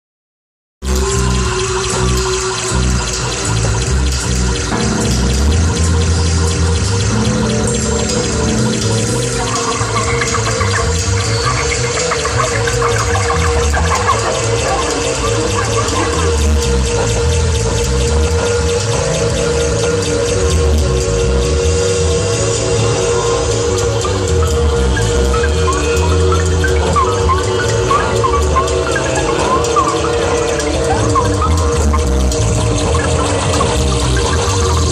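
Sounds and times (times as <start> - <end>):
experimental noise music: 0.8 - 34.9.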